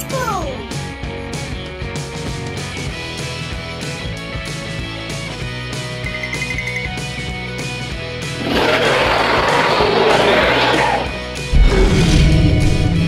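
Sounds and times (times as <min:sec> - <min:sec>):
background music with beat: 0:00.0 - 0:08.3
dinosaur roar: 0:08.4 - 0:13.0.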